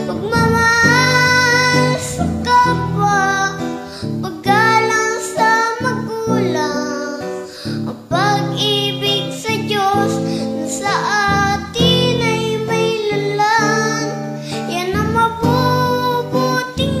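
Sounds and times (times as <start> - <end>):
instrumental accompaniment: 0.0 - 7.6
person singing a melody: 0.0 - 17.0.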